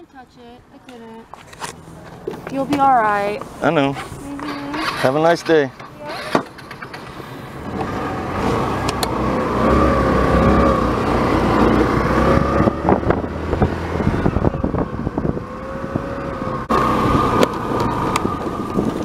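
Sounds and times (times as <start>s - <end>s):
scooter engine whining: 1.3s - 19.0s.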